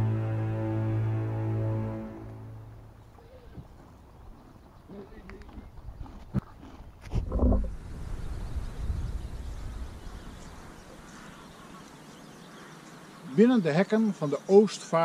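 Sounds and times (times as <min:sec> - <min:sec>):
wind rumbling on microphone: 0:02.8 - 0:11.6.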